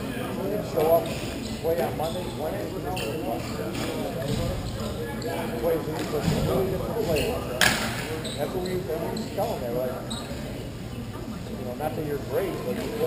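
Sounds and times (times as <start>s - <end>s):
players' voices: 0.0s - 13.0s.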